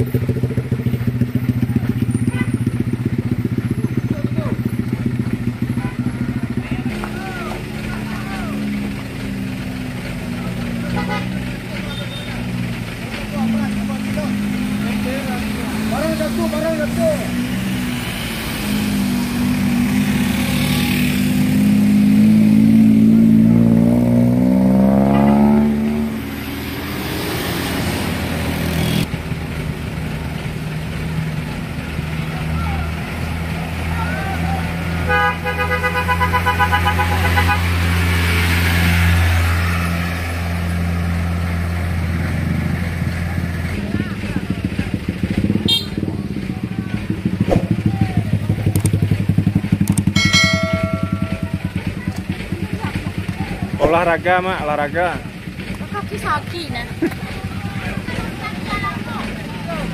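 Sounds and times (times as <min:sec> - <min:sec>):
vehicle engine revving: 0:00.0 - 0:59.9
vehicle horn: 0:02.2 - 0:02.7, 0:10.9 - 0:12.4, 0:35.0 - 0:37.9, 0:45.6 - 0:46.0.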